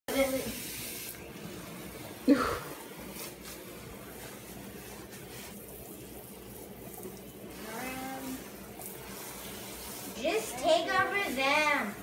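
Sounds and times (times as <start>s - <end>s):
water spraying onto dry ice: 0.1s - 12.0s.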